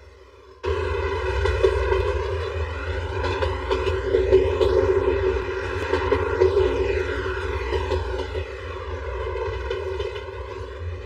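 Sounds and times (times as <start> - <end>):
train rumbling through tunnel: 0.0 - 11.0.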